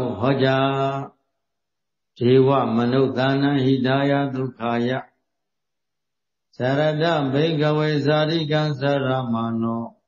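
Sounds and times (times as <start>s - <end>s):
man chanting: 0.0s - 1.2s, 2.2s - 5.2s, 6.6s - 10.0s.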